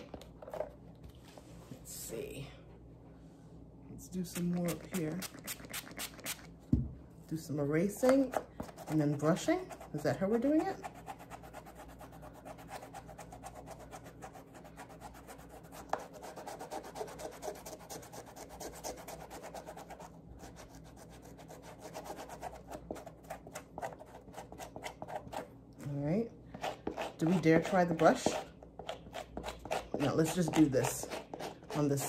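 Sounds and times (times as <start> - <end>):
eraser scrubbing suede: 10.6 - 25.5, 26.6 - 32.0.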